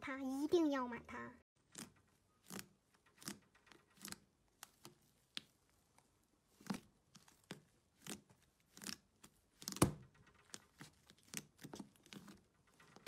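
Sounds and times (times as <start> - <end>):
slime squishing: 1.6 - 13.0.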